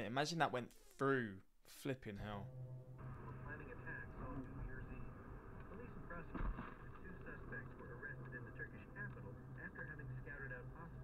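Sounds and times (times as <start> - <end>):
faint talk from car radio: 3.0 - 11.0.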